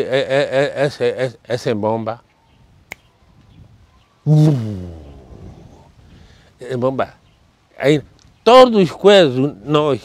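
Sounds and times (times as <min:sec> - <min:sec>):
man imitating an explosion: 0:04.3 - 0:05.7.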